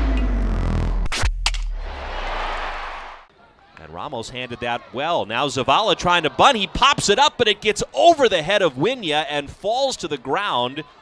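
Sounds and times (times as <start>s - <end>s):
electronic intro sting music: 0.0s - 1.9s.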